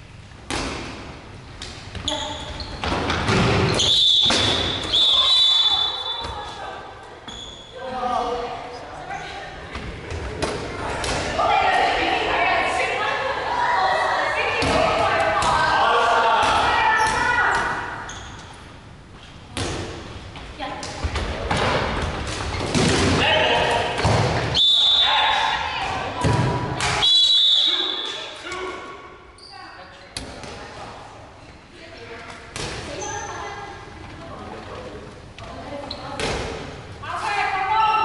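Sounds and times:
balls thudding on gym floor: 0:02.8 - 0:04.9, 0:19.5 - 0:23.2, 0:23.9 - 0:24.6, 0:25.8 - 0:27.0
short high squeaks: 0:07.3 - 0:07.8.

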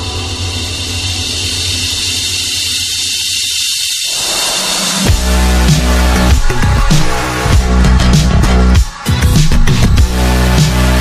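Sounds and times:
electronic bass: 0:04.1 - 0:11.0.

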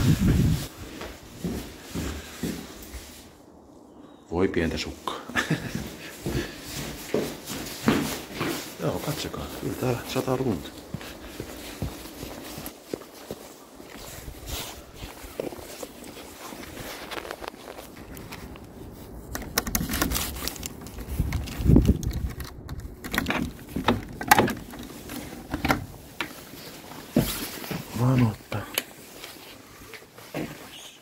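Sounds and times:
faint footsteps: 0:00.0 - 0:03.5, 0:05.3 - 0:19.3, 0:20.5 - 0:31.0.

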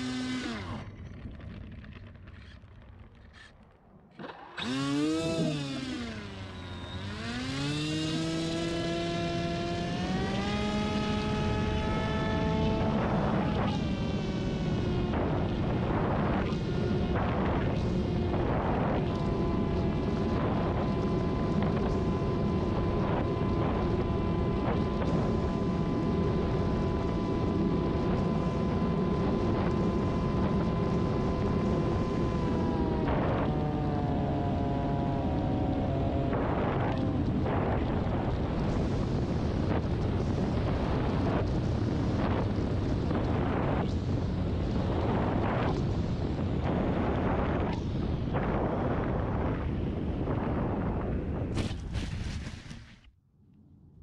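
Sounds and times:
electric motor and propeller whine: 0:00.0 - 0:53.1
wind rushing over camera: 0:00.0 - 0:54.0.

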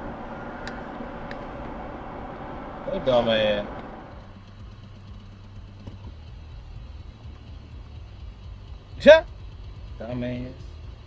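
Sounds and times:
car idling from inside cabin: 0:00.0 - 0:11.0.

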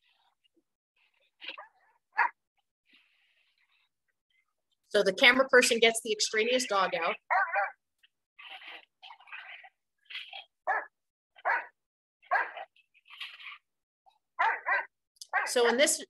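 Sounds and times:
dogs barking and yelping: 0:01.1 - 0:02.4, 0:07.0 - 0:07.8, 0:08.4 - 0:15.7.

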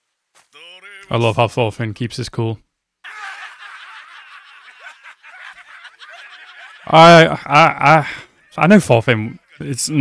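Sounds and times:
men laughing and jeering: 0:03.0 - 0:10.0.

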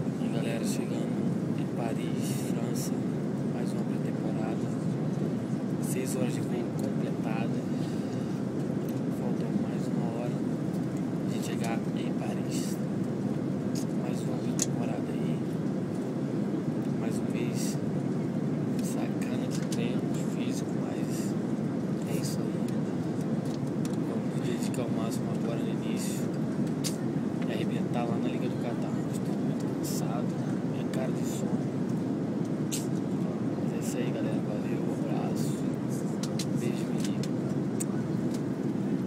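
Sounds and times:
airliner cabin rumble: 0:00.0 - 0:39.0
faint voices talking: 0:00.0 - 0:39.0.

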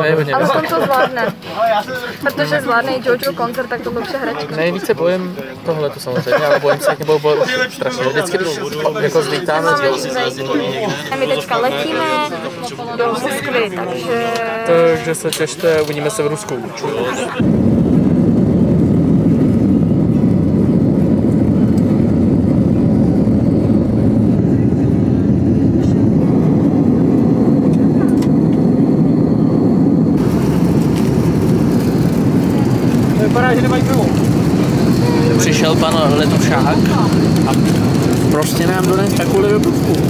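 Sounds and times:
jet engine rumble in cabin: 0:17.0 - 0:40.0
cruising cabin noise: 0:17.4 - 0:40.0
faint voices: 0:22.8 - 0:30.5, 0:31.1 - 0:40.0.

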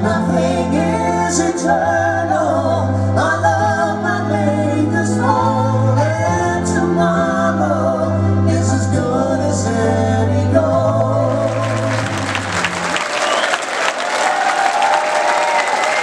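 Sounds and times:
man and woman singing together: 0:00.0 - 0:12.2
long held bass notes: 0:00.0 - 0:13.0.

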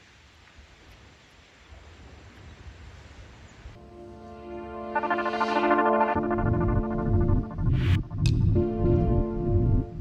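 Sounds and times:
music with long held tones: 0:03.8 - 0:10.0.

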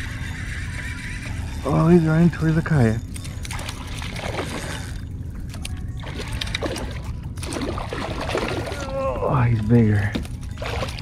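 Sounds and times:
steady low rumble: 0:00.0 - 0:11.0
water splashing and sloshing: 0:00.0 - 0:11.0.

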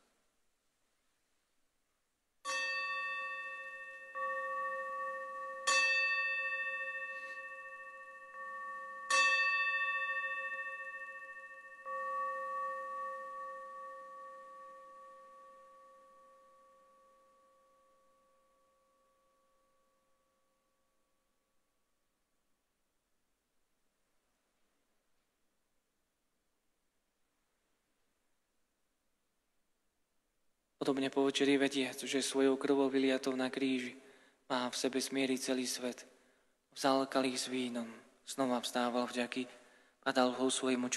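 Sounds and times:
altar bell ringing: 0:02.5 - 0:21.2.

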